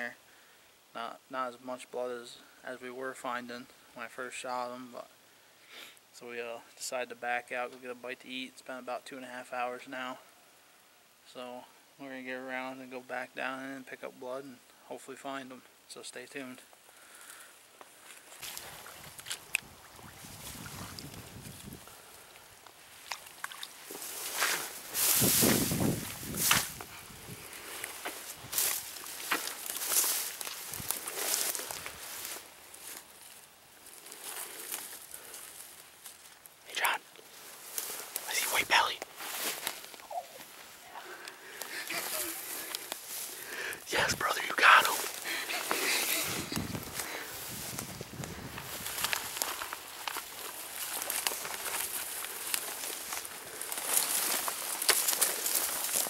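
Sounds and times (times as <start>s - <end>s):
footsteps in weeds: 22.9s - 36.4s, 39.0s - 43.5s, 45.0s - 56.0s
dry weeds swishing against clothing: 22.9s - 36.5s, 37.2s - 40.8s, 41.6s - 43.4s, 44.8s - 56.0s.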